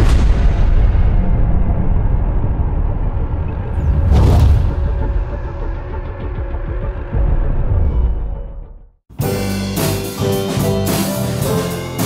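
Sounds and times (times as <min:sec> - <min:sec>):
deep cinematic rumble: 0:00.0 - 0:09.0
brief whoosh: 0:03.5 - 0:05.9.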